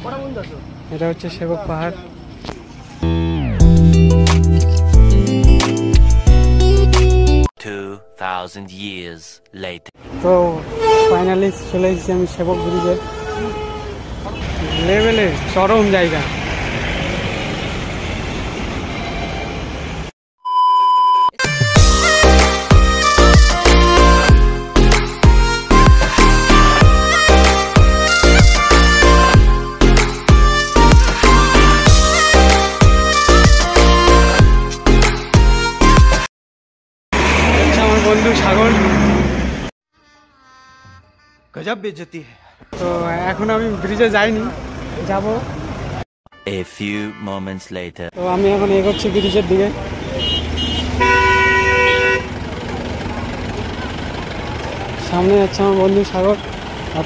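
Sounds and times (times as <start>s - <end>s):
passing engines rumbling: 0.0s - 5.2s, 10.0s - 20.1s, 37.2s - 39.7s, 42.4s - 46.0s, 48.2s - 57.0s
man talking: 7.6s - 13.0s, 41.6s - 45.4s, 46.4s - 49.8s
vehicle horn: 10.5s - 15.4s, 39.9s - 43.5s, 46.3s - 47.6s, 48.5s - 52.7s.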